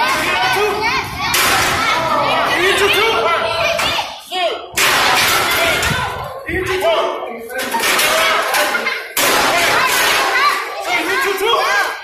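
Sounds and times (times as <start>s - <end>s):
crowd shouting and chattering: 0.0s - 12.0s.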